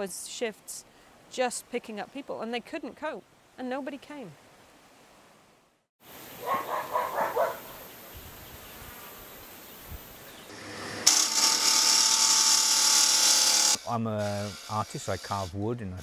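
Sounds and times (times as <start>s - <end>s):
lathe whine: 10.5s - 13.9s
gouge scraping spinning wood: 10.5s - 15.6s.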